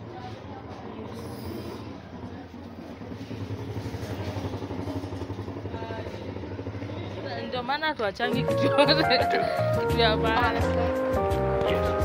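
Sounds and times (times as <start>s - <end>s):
engine running: 0.0s - 12.0s.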